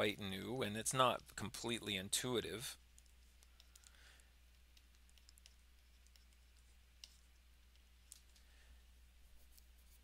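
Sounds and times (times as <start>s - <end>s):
low steady hum: 0.0s - 10.0s
stylus tapping on tablet screen: 2.9s - 8.3s.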